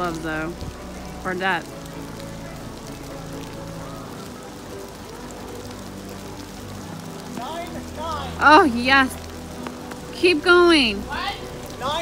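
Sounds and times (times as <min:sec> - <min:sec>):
steady rain falling: 0:00.0 - 0:12.0
person speaking: 0:07.4 - 0:09.2.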